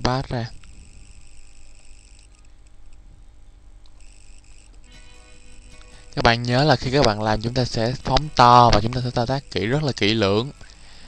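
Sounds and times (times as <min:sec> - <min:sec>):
low steady hum: 0:00.0 - 0:11.0
thin high hiss: 0:04.0 - 0:11.0.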